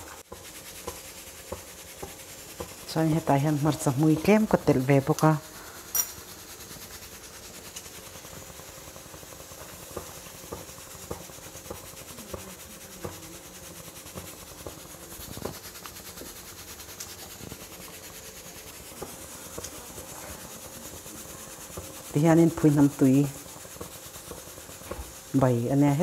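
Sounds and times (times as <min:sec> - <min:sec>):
soup boiling in a pot: 0:00.0 - 0:26.0.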